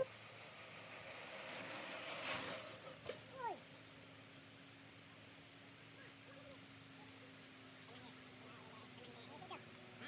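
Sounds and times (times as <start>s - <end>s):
bicycle tyre hiss: 0.4s - 3.3s.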